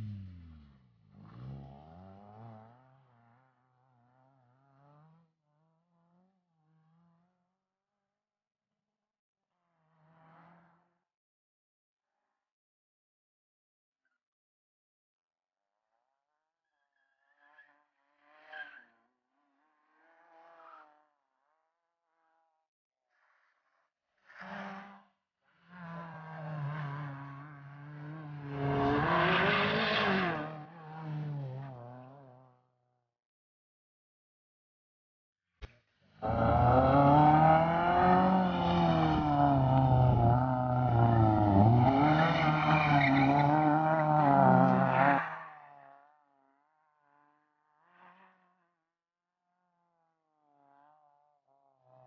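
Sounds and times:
faint car engine revving: 0:00.0 - 0:05.2, 0:25.7 - 0:32.5, 0:36.1 - 0:45.8.

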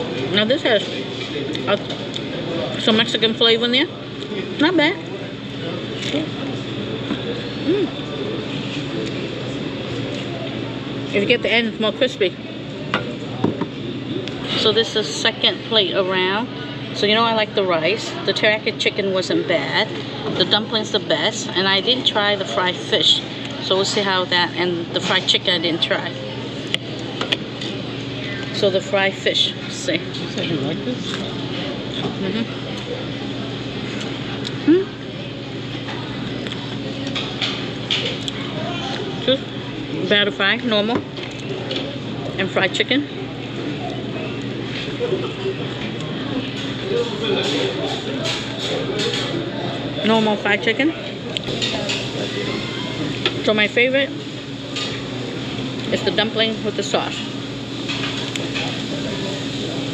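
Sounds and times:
even hum: 0:00.0 - 0:59.9
indistinct voices of diners: 0:00.0 - 0:59.9.

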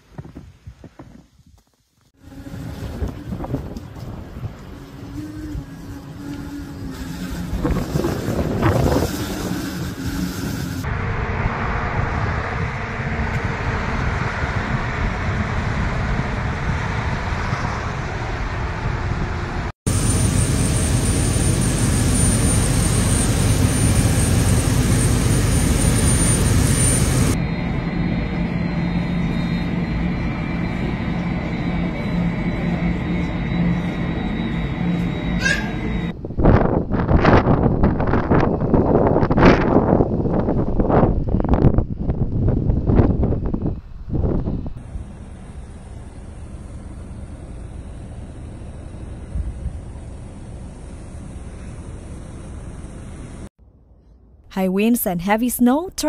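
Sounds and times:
wind noise on microphone: 0:00.0 - 0:01.6, 0:02.2 - 0:19.7, 0:36.1 - 0:44.9
jet engine rush and whine: 0:02.1 - 0:53.5
taxiing airliner engines: 0:02.2 - 0:53.5.

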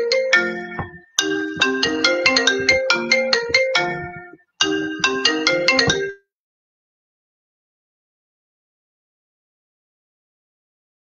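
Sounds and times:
marimba phone ringtone: 0:00.0 - 0:06.2.

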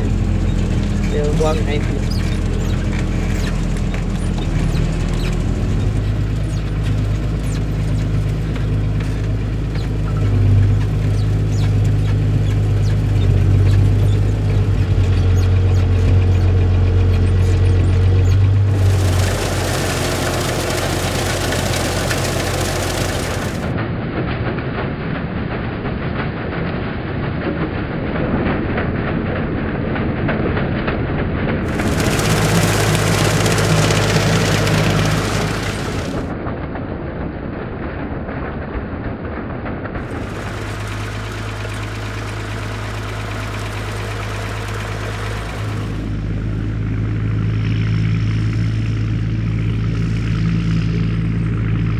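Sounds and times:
tedder rotors tossing grass: 0:00.0 - 0:23.7, 0:31.7 - 0:36.3, 0:40.0 - 0:46.3
tractor engine drone: 0:00.0 - 0:24.0, 0:31.6 - 0:36.6, 0:39.9 - 0:51.9.

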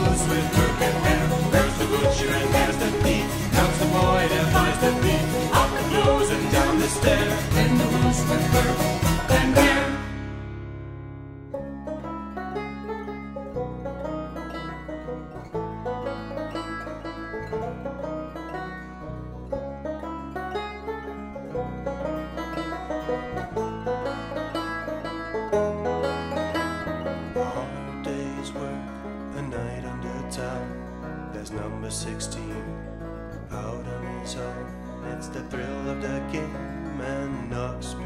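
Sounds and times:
acoustic guitar chords: 0:00.0 - 0:38.0
banjo picking: 0:00.0 - 0:38.0.

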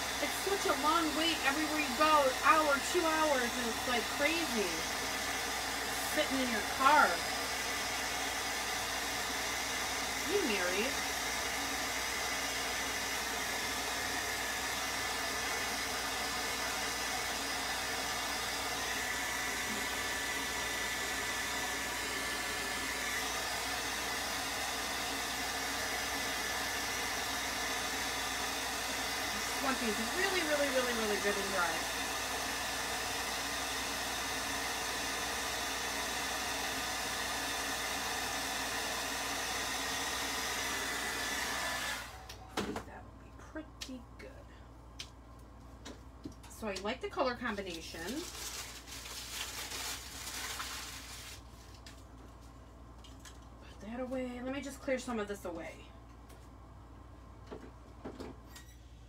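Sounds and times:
hot-air dryer blowing: 0:00.0 - 0:42.9, 0:46.6 - 0:51.5.

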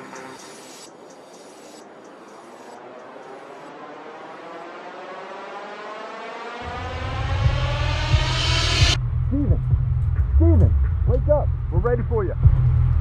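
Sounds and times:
hissing swell rising in pitch: 0:00.0 - 0:09.0
deep low rumble: 0:06.6 - 0:13.0.

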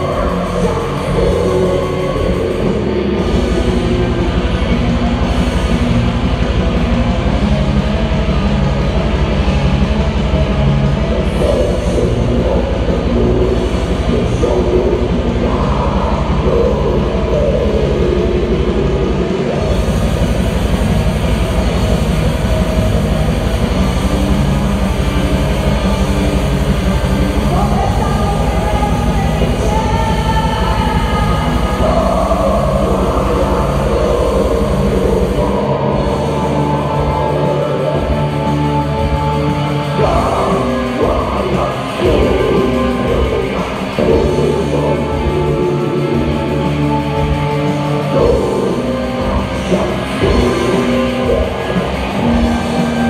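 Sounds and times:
distorted guitar and bass: 0:00.0 - 0:53.0
fast dense drumming: 0:00.0 - 0:53.0
woman singing: 0:27.5 - 0:32.1.

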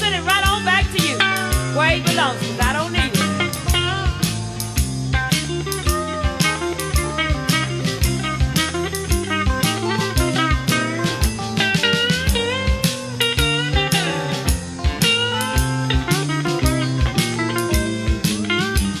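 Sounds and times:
drum kit beat: 0:00.0 - 0:19.0
electric guitar solo: 0:00.0 - 0:19.0.

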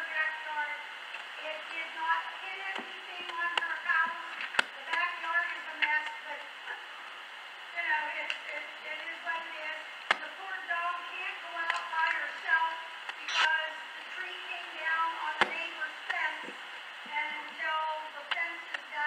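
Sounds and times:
woman speaking indistinctly: 0:00.0 - 0:06.9, 0:07.7 - 0:19.0.

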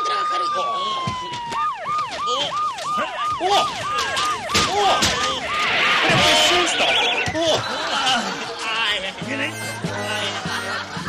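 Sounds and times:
siren yelping: 0:00.0 - 0:08.1
people shouting: 0:03.0 - 0:08.4.

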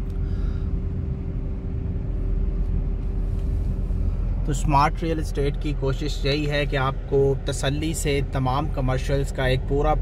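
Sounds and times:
faint steady hum: 0:00.0 - 0:10.0
low outdoor rumble: 0:00.0 - 0:10.0.

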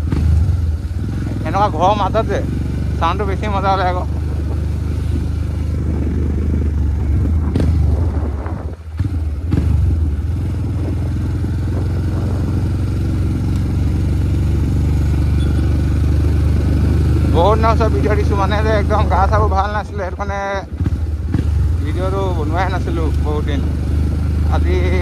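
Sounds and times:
motorcycle engine rumbling: 0:00.0 - 0:25.0.

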